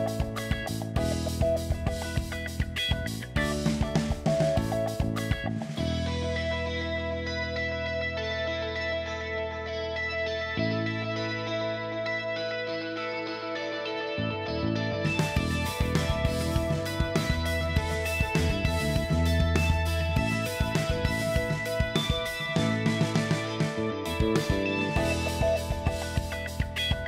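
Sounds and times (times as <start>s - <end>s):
drum beat: 0.0s - 5.5s, 15.2s - 27.0s
guitar: 0.0s - 27.0s.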